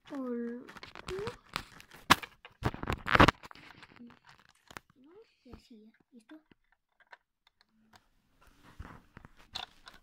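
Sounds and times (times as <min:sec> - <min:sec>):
plastic bricks clicking: 0:06.2 - 0:08.1, 0:09.5 - 0:10.0.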